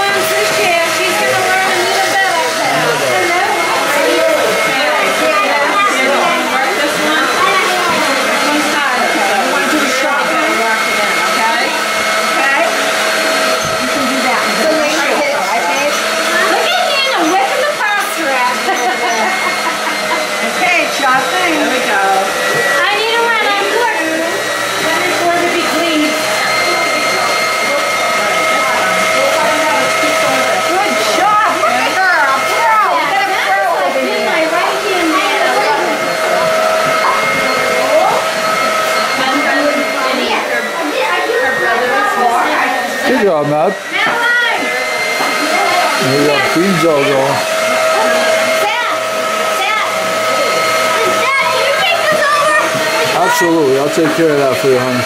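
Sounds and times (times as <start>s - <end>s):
stand mixer motor whine: 0.0s - 55.0s.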